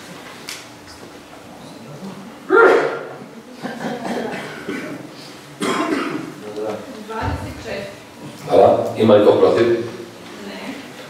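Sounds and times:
person clearing throat: 0:02.5 - 0:03.2, 0:03.9 - 0:06.4.

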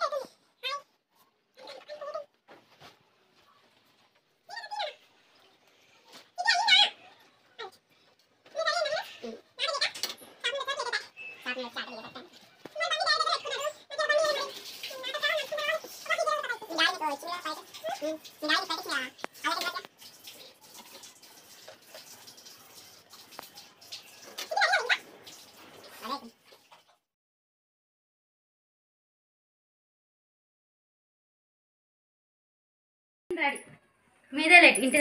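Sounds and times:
people talking in high voices: 0:00.0 - 0:01.0, 0:04.4 - 0:05.2, 0:06.1 - 0:07.8, 0:08.4 - 0:19.9, 0:24.4 - 0:25.1, 0:33.3 - 0:35.0.

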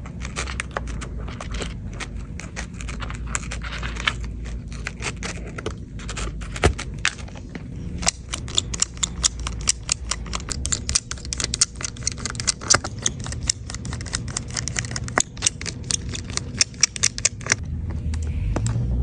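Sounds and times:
steady low hum: 0:00.0 - 0:19.0
screwdriver and screws clicking: 0:08.0 - 0:17.6.

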